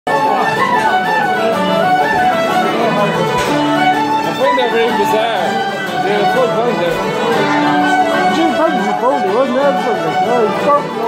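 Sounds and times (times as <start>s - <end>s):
fiddle playing quick melody: 0.1s - 11.0s.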